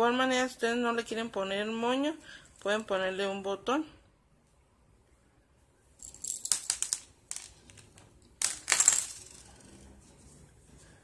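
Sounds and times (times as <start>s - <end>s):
buttons clattering onto tabletop: 6.0s - 9.4s.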